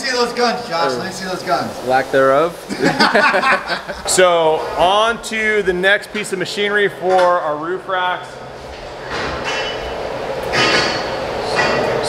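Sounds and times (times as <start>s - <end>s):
metalworking machinery running: 0.0s - 12.0s.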